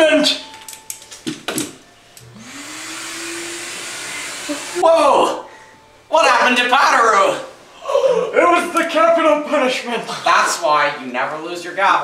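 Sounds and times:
small electric motor whirring: 0:02.2 - 0:04.8.

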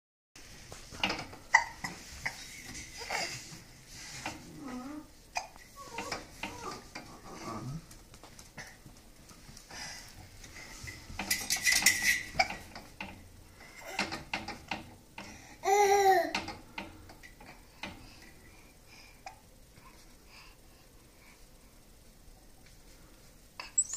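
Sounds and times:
metal baby gate rattling: 0:11.2 - 0:13.2.

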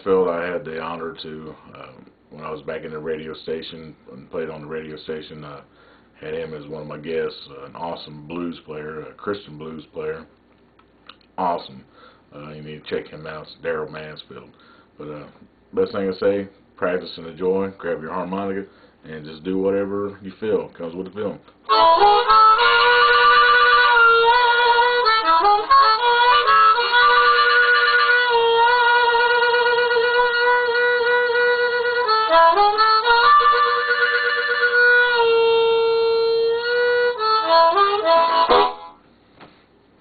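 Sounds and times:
harmonica playing: 0:21.7 - 0:39.1.

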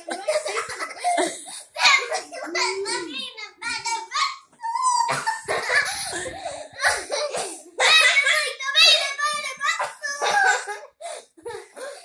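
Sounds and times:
child squealing and yelping: 0:04.1 - 0:05.2.

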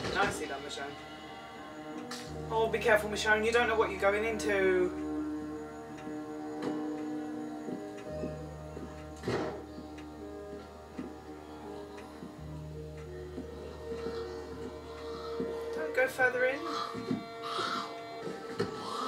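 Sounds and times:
suspenseful drama score on television: 0:00.0 - 0:19.0
slow regular ticking: 0:00.2 - 0:19.0.

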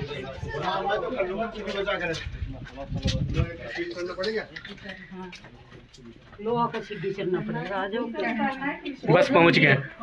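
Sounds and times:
people talking in a crowd: 0:00.0 - 0:10.0.

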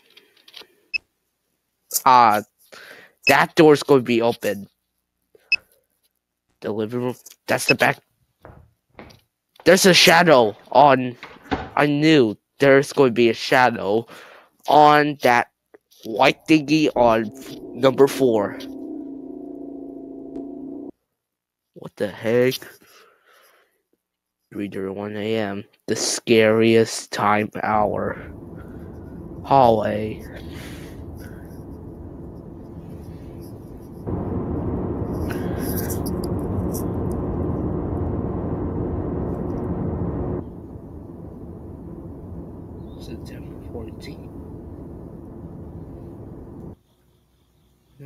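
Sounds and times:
low hum and hiss: 0:16.2 - 0:20.9, 0:27.2 - 0:48.0
rough static: 0:16.2 - 0:20.9, 0:27.4 - 0:46.8
low electronic drone: 0:16.5 - 0:20.9, 0:27.6 - 0:46.8.

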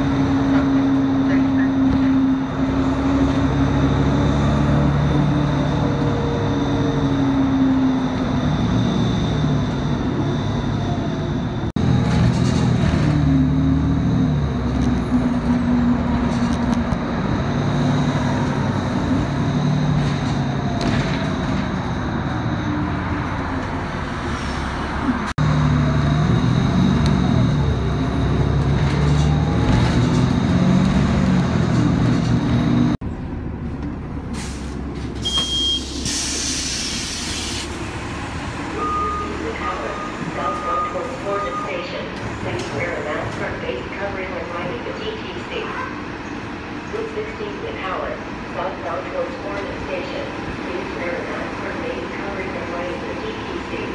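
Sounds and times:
bus engine running: 0:00.0 - 0:53.9
air brakes hissing: 0:34.3 - 0:37.8
short beeps: 0:35.2 - 0:35.9, 0:38.8 - 0:41.8.

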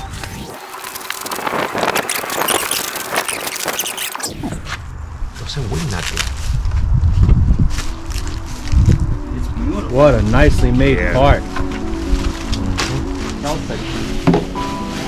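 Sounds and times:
plastic wrapping crinkling: 0:07.8 - 0:09.1.

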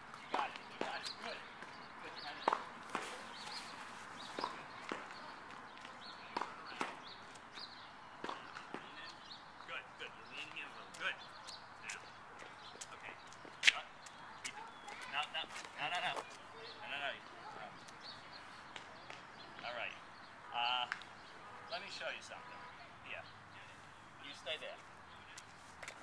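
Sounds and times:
faint distant voices: 0:00.0 - 0:26.0.

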